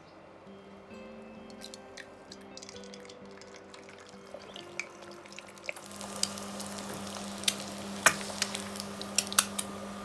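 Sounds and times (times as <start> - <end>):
oil popping and crackling: 1.5 - 9.7
egg sizzling in hot oil: 1.6 - 9.7.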